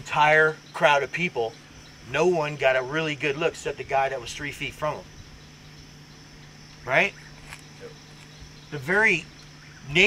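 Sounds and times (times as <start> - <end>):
man speaking: 0.0 - 5.1, 6.8 - 7.2, 8.7 - 10.0
insects chorus: 0.0 - 10.0.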